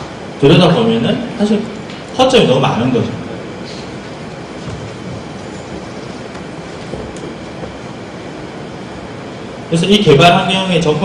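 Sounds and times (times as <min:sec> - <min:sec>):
room noise hiss and rumble: 0:00.0 - 0:11.0.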